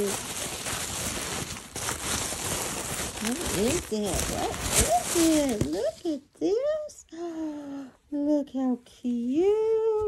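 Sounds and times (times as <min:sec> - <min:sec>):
tissue paper rustling and crinkling: 0:00.0 - 0:06.8.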